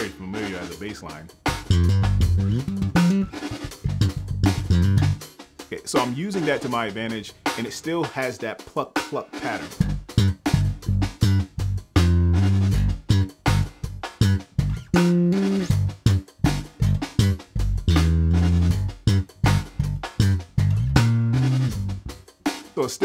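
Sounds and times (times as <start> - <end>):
slap bass guitar: 0.0 - 5.2, 9.7 - 22.2
drum track hi-hat and snare: 0.0 - 23.0.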